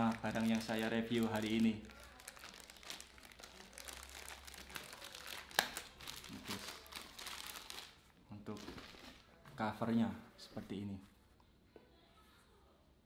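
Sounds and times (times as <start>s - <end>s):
plastic bag crinkling: 0.0s - 9.2s.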